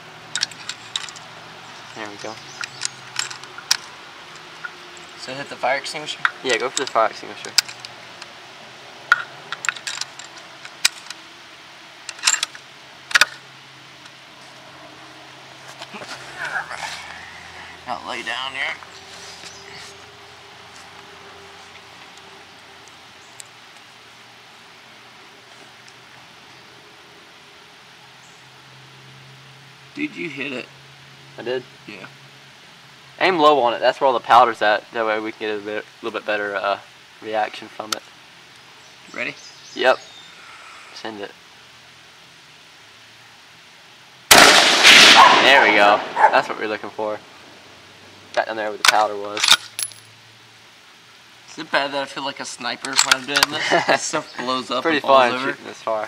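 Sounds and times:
faint outdoor hiss: 0.0s - 56.0s
rifle shot: 44.3s - 46.2s.

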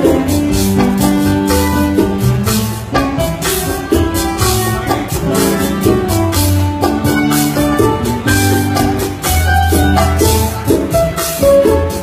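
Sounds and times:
cuatro and guitar melody: 0.0s - 12.0s.

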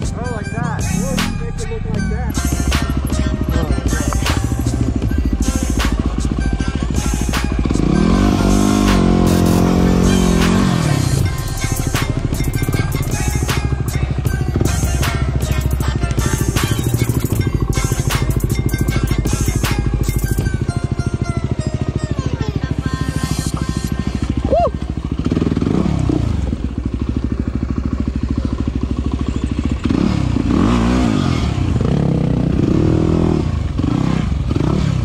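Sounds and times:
background music with a beat: 0.0s - 28.7s
motorcycle engine revving: 0.0s - 35.0s.

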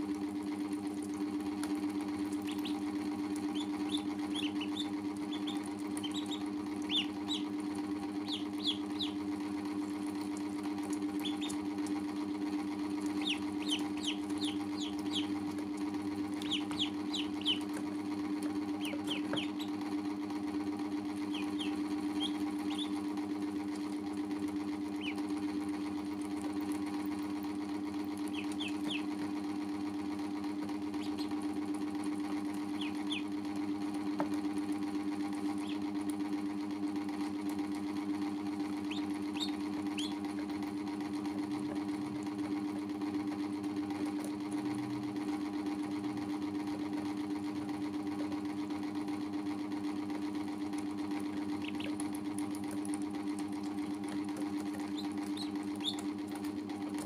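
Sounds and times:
steady low motor hum: 0.0s - 57.0s
ducklings peeping: 2.3s - 9.4s, 11.0s - 11.8s, 12.9s - 19.8s, 21.1s - 23.8s, 24.4s - 25.6s, 28.1s - 29.2s, 30.9s - 31.4s, 32.4s - 34.4s, 35.4s - 36.0s, 38.8s - 40.3s, 51.4s - 52.7s, 54.6s - 56.4s.

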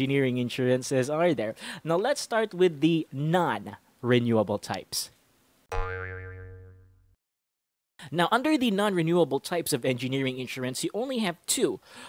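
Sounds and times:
cartoon boing effect: 5.7s - 7.2s.

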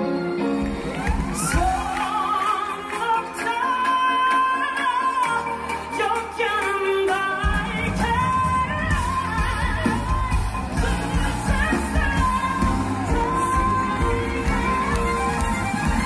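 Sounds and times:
live pop band with singing: 0.0s - 16.0s.

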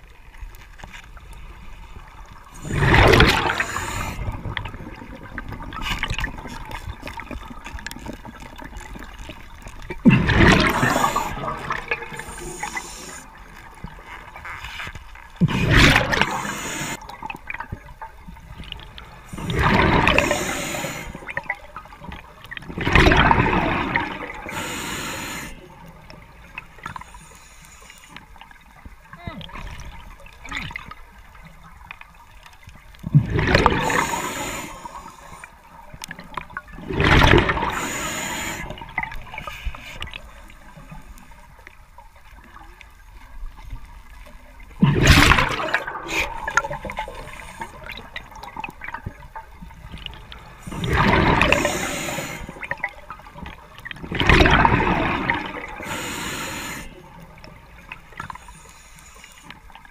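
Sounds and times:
faint crackle of small clicks: 0.0s - 59.9s
breath bubbling through regulator: 2.5s - 6.4s, 10.0s - 13.3s, 15.4s - 17.1s, 19.3s - 21.6s, 33.1s - 35.5s, 50.6s - 53.0s, 54.0s - 57.0s.

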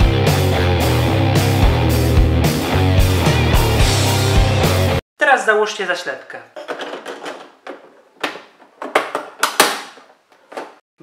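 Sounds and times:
plastic cover clicking into place: 6.6s - 10.8s.

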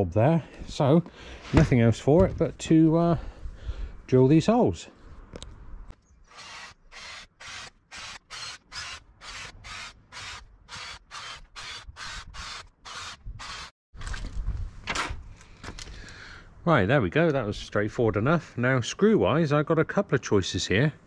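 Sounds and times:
cordless drill boring wood: 6.3s - 13.7s.

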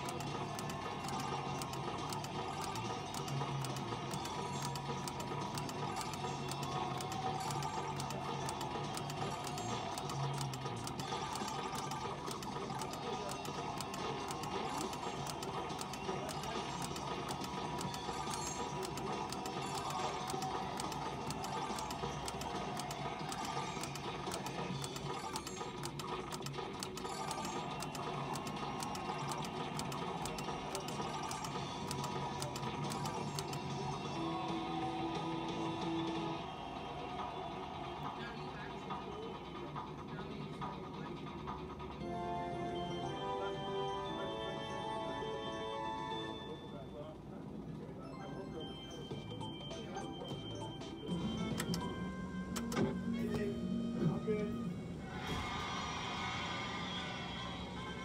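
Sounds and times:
game machine clicks: 0.0s - 34.2s, 49.3s - 53.0s
game background music: 0.0s - 47.1s, 48.0s - 56.0s.

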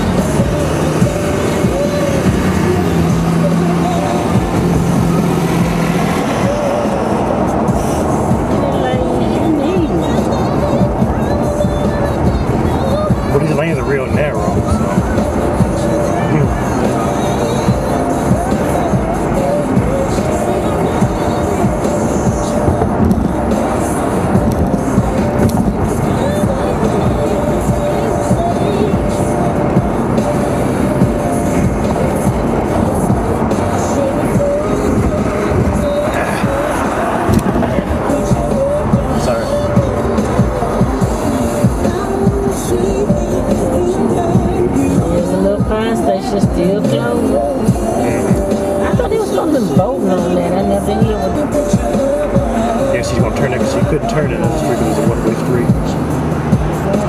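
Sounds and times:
music on car radio: 0.0s - 57.0s
road and engine noise: 0.0s - 57.0s.

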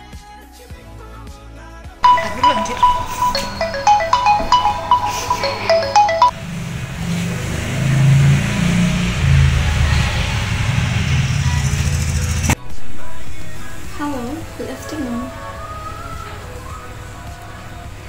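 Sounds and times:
smartphone ringtone chiming: 2.0s - 6.4s
low steady background sound: 2.0s - 7.0s.

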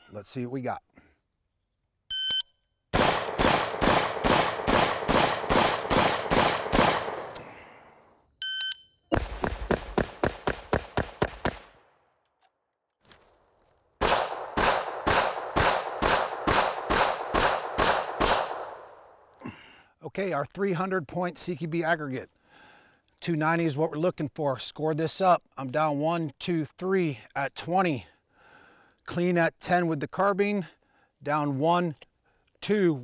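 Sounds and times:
shot timer beep: 2.1s - 2.5s
pistol shots: 2.9s - 7.5s, 9.2s - 11.8s, 14.0s - 19.0s
rifle rapid shots: 3.0s - 7.4s, 9.2s - 11.7s, 14.0s - 18.8s.

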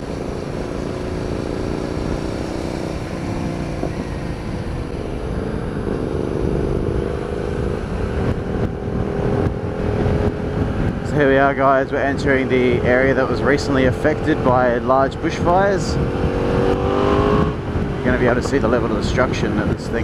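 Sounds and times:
motorcycle engine: 0.0s - 20.0s
wind noise on microphone: 0.0s - 20.0s.

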